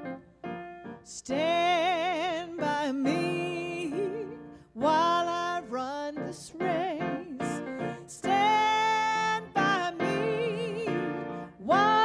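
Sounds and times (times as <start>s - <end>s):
piano accompaniment: 0.0s - 12.0s
woman singing gospel solo: 1.1s - 12.0s.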